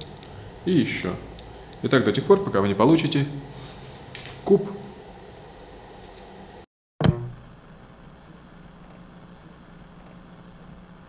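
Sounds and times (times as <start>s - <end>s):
faint low hum: 7.1s - 11.0s.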